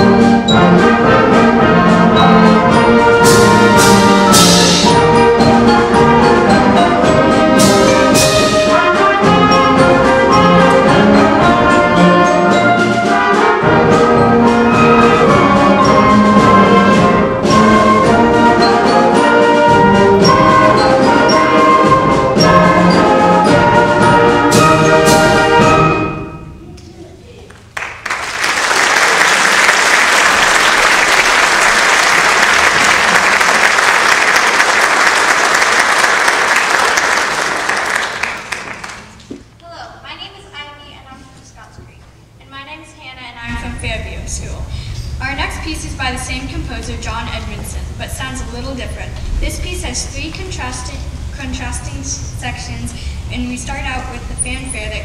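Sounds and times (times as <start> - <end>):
concert band playing: 0.0 - 26.7, 29.0 - 39.4
audience applause: 27.5 - 39.3.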